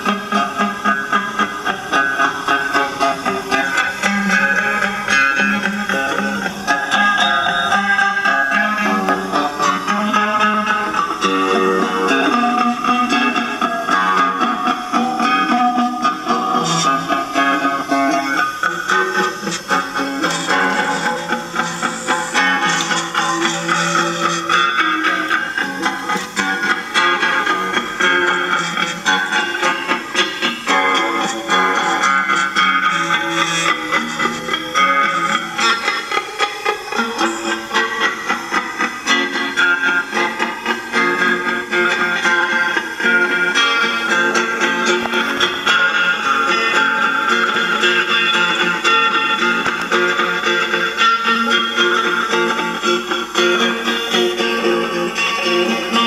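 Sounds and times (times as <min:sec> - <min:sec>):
guitar plucking notes: 0:00.0 - 0:56.0.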